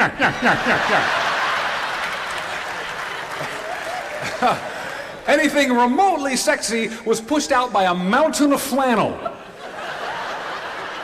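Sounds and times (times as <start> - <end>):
audience laughing: 0.0 - 5.3, 9.2 - 11.0
audience applauding: 0.7 - 5.6.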